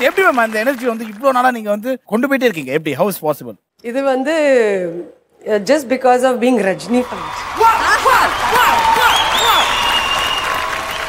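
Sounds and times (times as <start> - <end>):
audience applauding: 0.0 - 1.7, 6.9 - 11.0.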